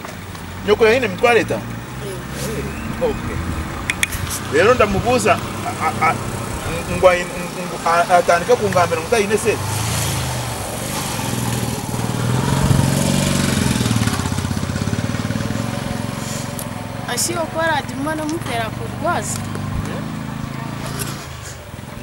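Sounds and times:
small motorcycle passing: 0:00.0 - 0:22.0.

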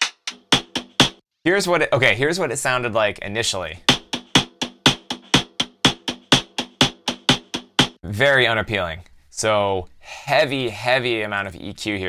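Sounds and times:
clicky drum strokes: 0:03.9 - 0:08.0.

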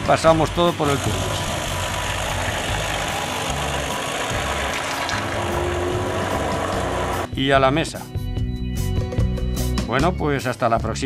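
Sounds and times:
immersion blender whirring: 0:00.0 - 0:07.3.

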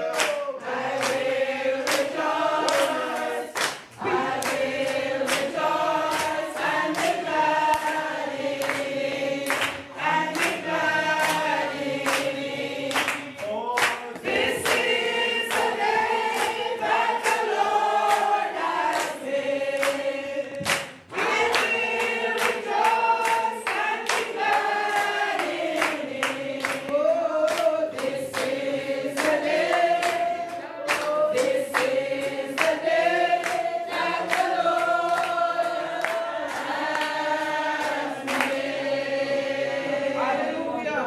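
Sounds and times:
hands clapping in time: 0:00.0 - 0:19.2, 0:19.8 - 0:38.7
congregation singing: 0:00.0 - 0:41.0.

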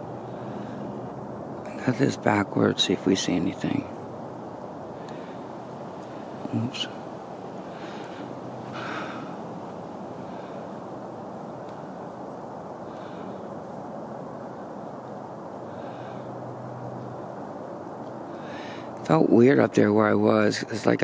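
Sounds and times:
steady hiss: 0:00.0 - 0:21.0
person breathing close: 0:00.1 - 0:01.1, 0:04.9 - 0:06.6, 0:07.6 - 0:11.1, 0:12.8 - 0:13.7, 0:15.6 - 0:16.6, 0:18.2 - 0:19.0.

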